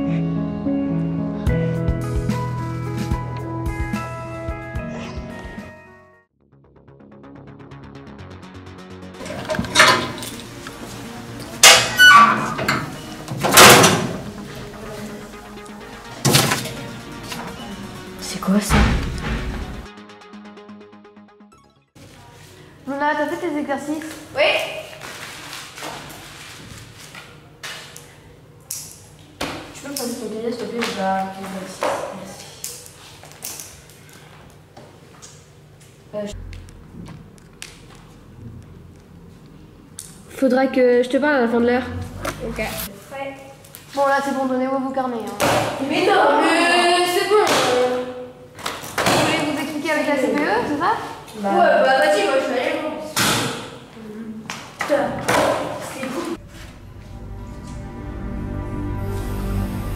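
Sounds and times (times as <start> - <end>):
music: 0.0 - 22.2, 56.4 - 59.9
metal locker door banging: 11.6 - 14.3.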